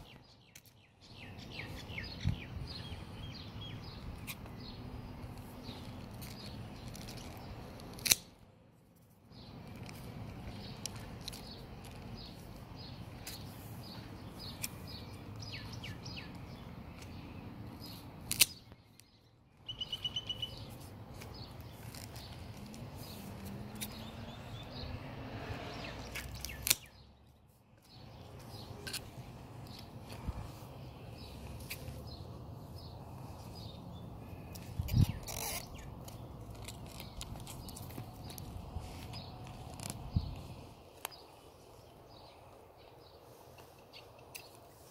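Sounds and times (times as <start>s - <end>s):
birds chirping: 0.0s - 7.7s, 9.3s - 44.9s
steady outdoor hum: 0.0s - 44.9s
scissors snipping: 5.7s - 8.4s, 18.2s - 19.1s, 21.2s - 24.4s, 26.1s - 26.9s.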